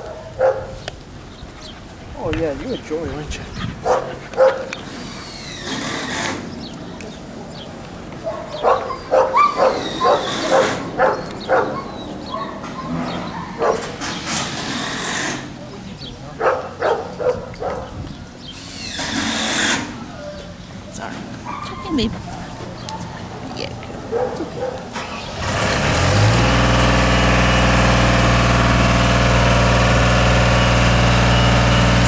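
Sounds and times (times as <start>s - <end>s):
dogs barking: 0.0s - 0.9s, 3.8s - 5.0s, 8.1s - 14.2s, 16.3s - 18.0s, 21.4s - 25.1s.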